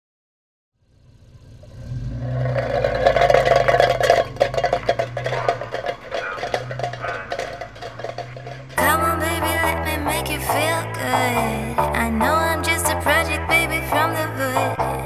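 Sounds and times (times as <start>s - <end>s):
car engine running: 0.8s - 15.0s
tin cans clattering: 2.6s - 11.4s.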